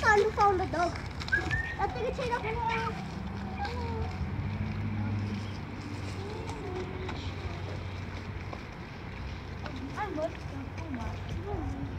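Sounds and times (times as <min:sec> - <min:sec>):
wind rumbling on microphone: 0:00.6 - 0:11.9.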